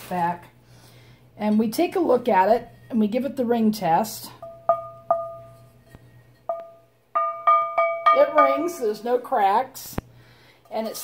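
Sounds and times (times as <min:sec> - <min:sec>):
cast iron skillet tapped ringing: 0:04.4 - 0:08.9.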